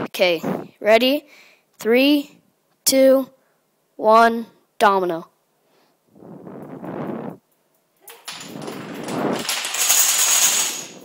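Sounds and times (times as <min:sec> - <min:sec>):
wooden blocks toppling clatter: 0:08.2 - 0:11.0.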